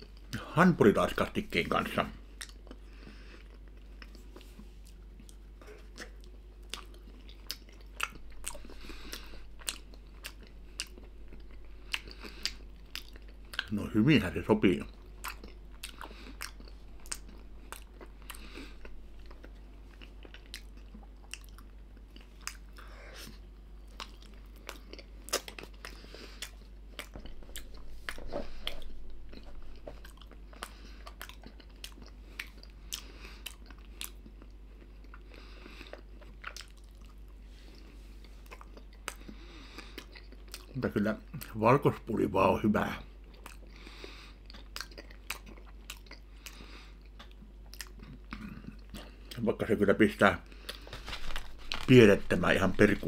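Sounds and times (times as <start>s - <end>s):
person chewing wetly: 2.2s - 13.7s, 14.6s - 41.5s, 43.2s - 49.4s, 50.4s - 53.0s.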